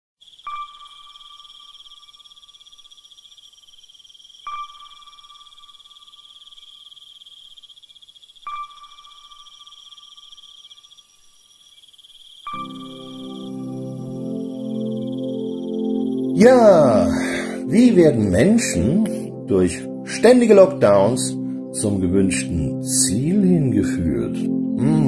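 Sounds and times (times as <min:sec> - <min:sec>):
cricket-like trill: 0:00.2 - 0:25.0.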